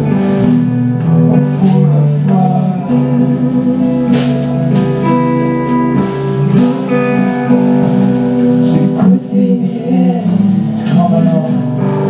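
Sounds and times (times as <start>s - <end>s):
live band playing instrumental: 0.0s - 12.0s
low bass line: 0.0s - 12.0s
ringing electric guitar notes: 0.0s - 12.0s
steady beat: 0.0s - 12.0s.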